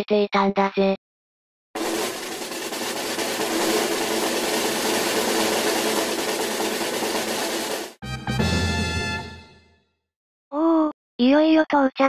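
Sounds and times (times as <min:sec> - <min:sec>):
snare drum roll: 0:01.8 - 0:09.6.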